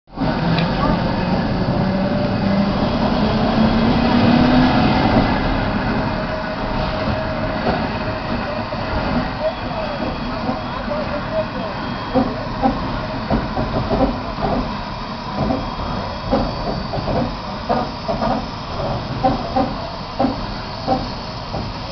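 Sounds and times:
steam locomotive rumble and hiss: 0.1s - 21.9s
people talking: 0.6s - 1.6s, 8.3s - 12.8s.

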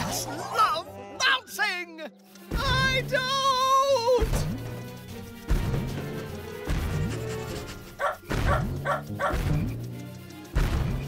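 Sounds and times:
background music: 0.0s - 11.0s
cartoon bounce thuds with twang: 8.3s - 9.7s, 10.6s - 11.0s.

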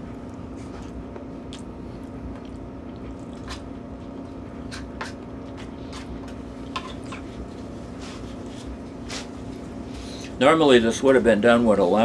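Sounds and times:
quiet chewing: 0.0s - 7.4s
steady low hum: 0.0s - 12.0s.

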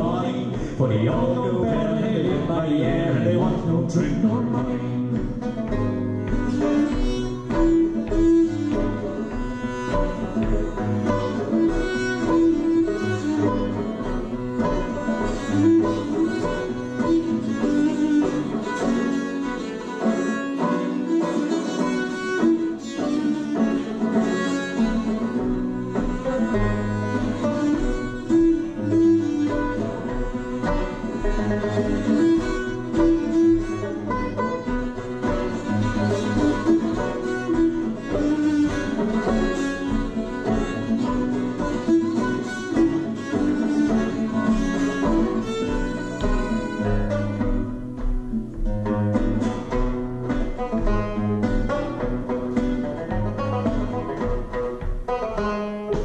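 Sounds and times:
bowed viola da gamba melody: 0.0s - 56.0s
plucked guitar: 0.0s - 56.0s
tenor banjo: 0.0s - 56.0s.

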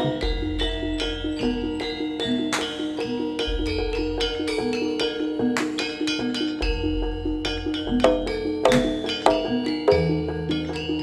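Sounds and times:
metallic gong-chime notes: 0.0s - 11.0s.

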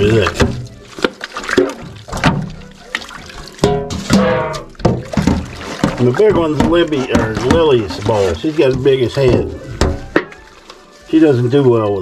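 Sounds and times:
water sloshing: 0.0s - 12.0s
metal bowl knocking on sink: 3.6s - 10.4s.

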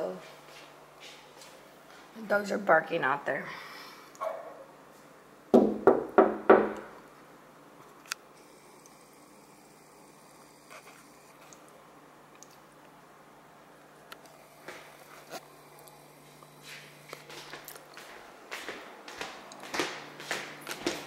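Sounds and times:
dog barking: 4.2s - 4.7s.

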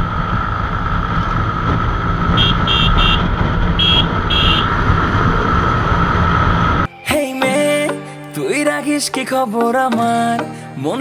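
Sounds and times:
motorcycle engine and road noise: 0.0s - 6.9s
vehicle horn toots: 2.3s - 4.9s.

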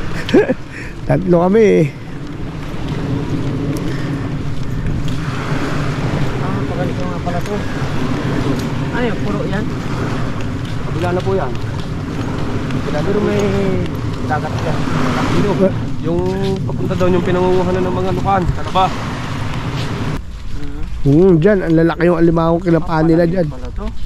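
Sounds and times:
wind rumbling on microphone: 0.0s - 24.0s
men talking: 0.2s - 2.2s, 6.0s - 9.6s, 10.8s - 12.0s, 12.6s - 19.2s, 20.5s - 24.0s.

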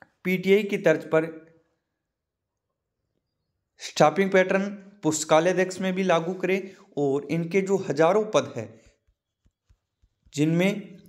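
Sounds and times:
man speaking: 0.1s - 1.4s, 3.8s - 8.8s, 10.3s - 11.0s.

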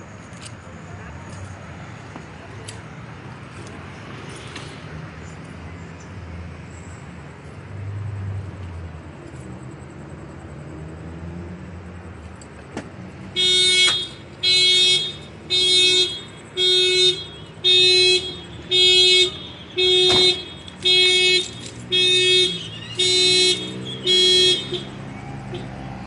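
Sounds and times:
low traffic rumble: 0.0s - 26.0s
car alarm horn honks: 13.4s - 25.7s.

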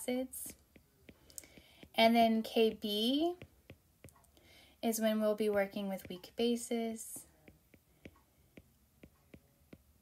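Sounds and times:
stylus tapping on glass screen: 0.4s - 4.3s, 5.4s - 6.4s, 7.1s - 10.0s.

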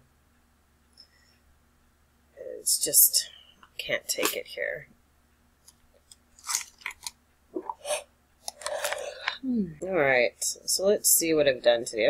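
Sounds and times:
short crunching noises: 6.4s - 7.7s.

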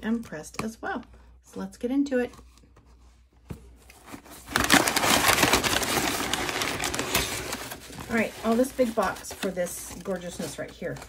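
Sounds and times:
packing paper and cardboard rustling: 2.4s - 11.0s.

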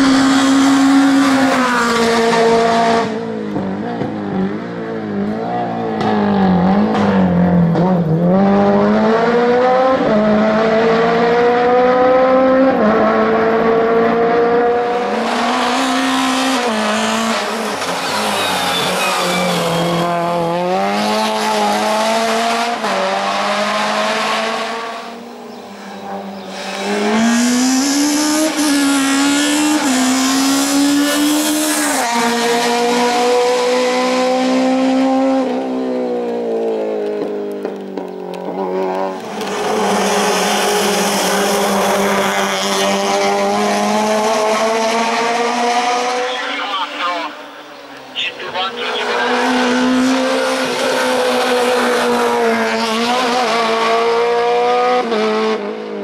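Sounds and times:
race car engine revving: 0.0s - 56.0s.

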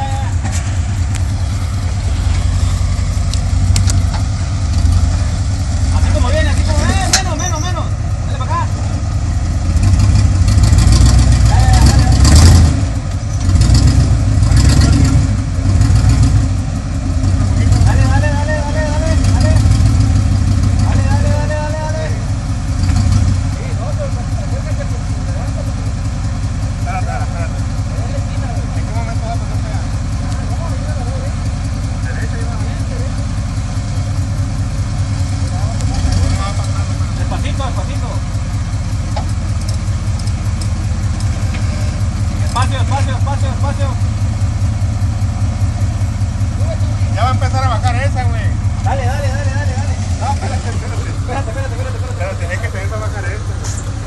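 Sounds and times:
engine revving: 0.0s - 54.0s.

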